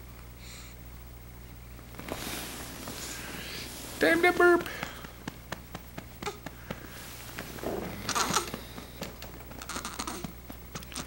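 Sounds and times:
cloth rustling: 1.8s - 9.7s
light pats on baby: 4.0s - 11.0s.

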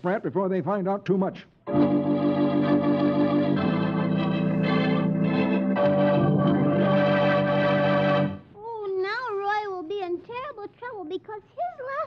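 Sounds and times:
high-pitched voice speaking: 8.6s - 12.0s.

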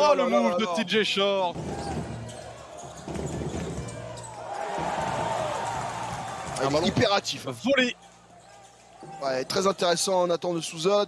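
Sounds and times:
crowd noise in an arena: 0.0s - 11.0s.

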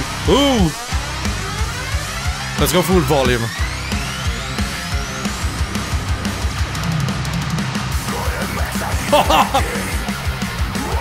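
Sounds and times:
drum kit: 0.0s - 11.0s
heavy distorted guitars: 0.0s - 11.0s
nu metal song: 0.0s - 11.0s.

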